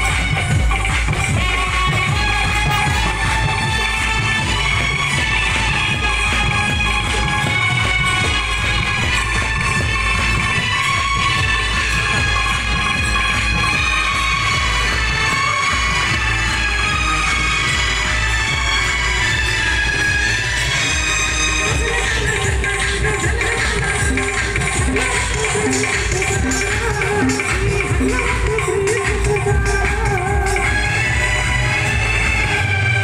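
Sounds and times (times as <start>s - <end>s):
music playing: 0.0s - 33.0s.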